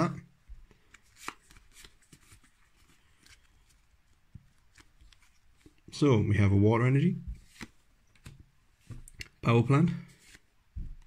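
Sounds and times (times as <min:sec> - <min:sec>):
trading cards rustling: 0:00.6 - 0:05.9, 0:07.3 - 0:09.4.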